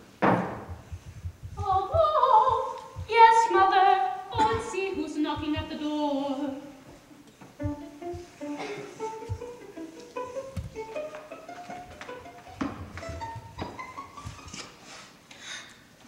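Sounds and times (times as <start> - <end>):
instrumental opera accompaniment: 1.5 - 14.9.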